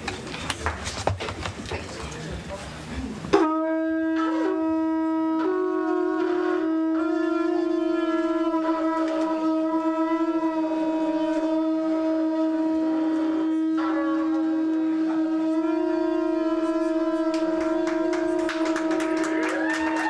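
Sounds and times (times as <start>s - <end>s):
steady horn-like note: 3.3s - 20.0s.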